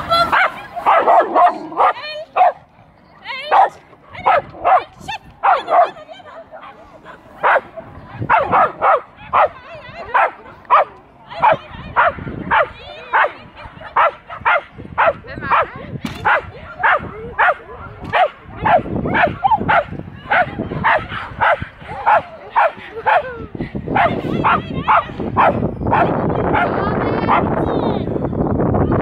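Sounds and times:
dog barking excitedly: 0.3 - 2.6, 3.5 - 6.0, 7.4 - 23.3, 23.9 - 27.5.

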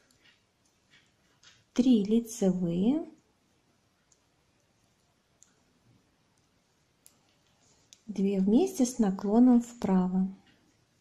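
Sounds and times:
knitting needles clicking: 0.0 - 2.4, 3.9 - 9.0.

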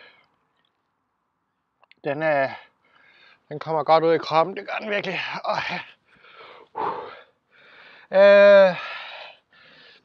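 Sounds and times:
man breathing hard: 2.7 - 3.5, 6.0 - 8.1, 8.7 - 10.0.

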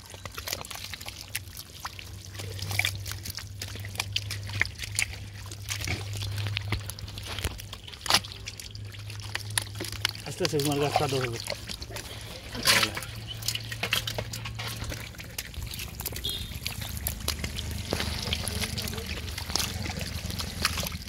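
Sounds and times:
low steady hum: 0.0 - 21.0
mud squelching and sucking: 0.0 - 21.0
small wet pops and clicks: 0.0 - 21.0.

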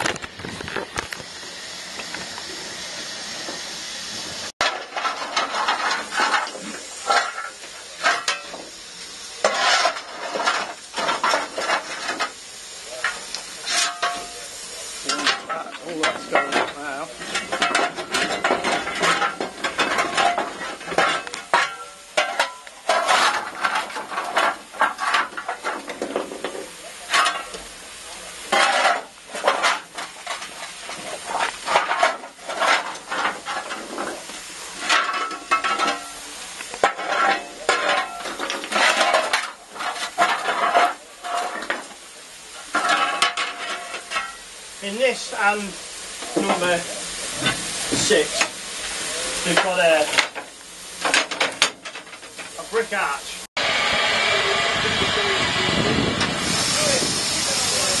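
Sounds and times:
steady steam hiss: 0.0 - 58.0
shovel scraping and clanking metal: 4.2 - 53.4.

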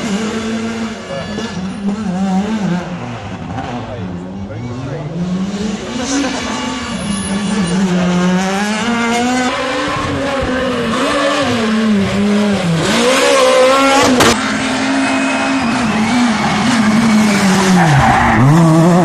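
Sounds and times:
rally car engines revving hard: 0.0 - 19.0.

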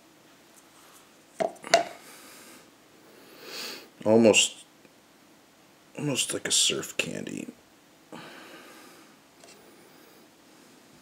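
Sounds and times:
soft hissing noise: 0.0 - 11.0.

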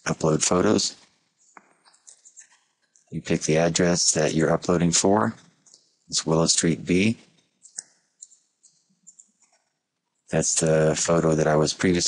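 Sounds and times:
computer mouse clicking: 7.6 - 9.6.

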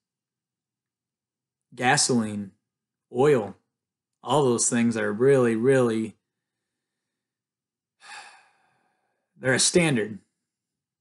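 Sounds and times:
man breathing: 8.0 - 9.4.

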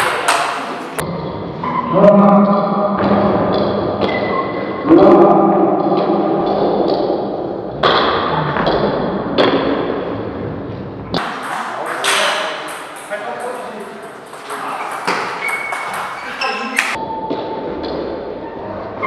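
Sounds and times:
table tennis ball pinging: 11.2 - 18.2.

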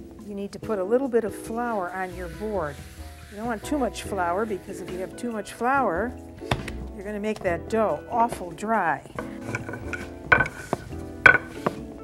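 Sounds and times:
soft background music: 0.0 - 12.0
rolling pin knocking on board: 9.2 - 11.9.

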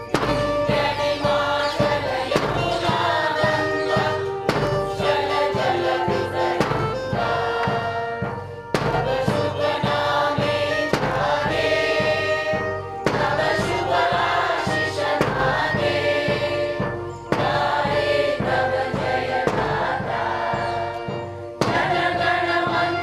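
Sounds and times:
bass drum beat: 0.0 - 23.0
mixed choir singing: 0.0 - 23.0.

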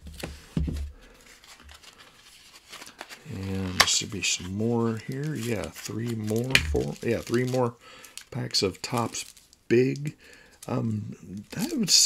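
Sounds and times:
plastic wrapping crinkling and tearing: 1.2 - 10.8.

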